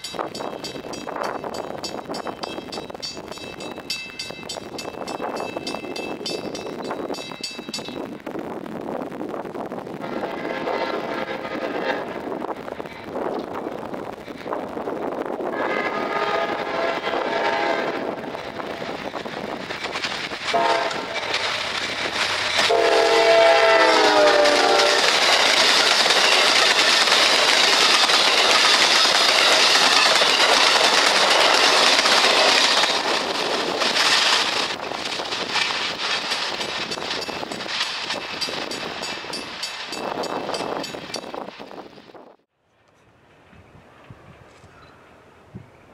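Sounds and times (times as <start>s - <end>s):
train wheels rushing on rails: 0.0s - 45.9s
train horn blasts: 10.0s - 12.1s, 15.5s - 18.2s, 20.5s - 21.3s, 22.6s - 25.1s.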